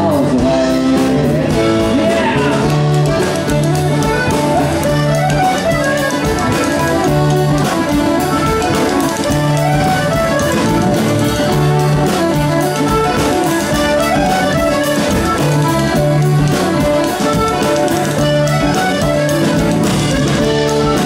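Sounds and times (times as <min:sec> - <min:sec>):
accordion: 0:00.0 - 0:21.0
acoustic guitar: 0:00.0 - 0:21.0
bass: 0:00.0 - 0:21.0
drums: 0:00.0 - 0:21.0
fiddle: 0:00.0 - 0:21.0.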